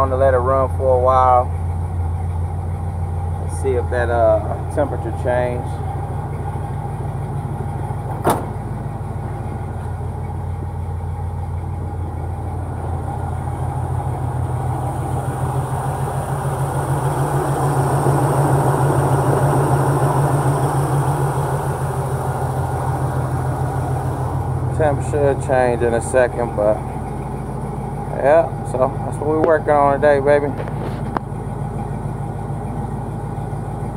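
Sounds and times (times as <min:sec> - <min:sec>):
car engine idling: 0:00.0 - 0:33.9.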